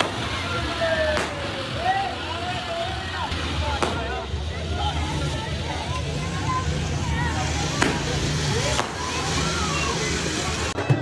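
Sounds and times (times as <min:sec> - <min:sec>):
crowd voices: 0:00.0 - 0:11.0
firework fountain hissing: 0:00.0 - 0:11.0
sharp crack: 0:01.1 - 0:01.6, 0:07.8 - 0:09.2.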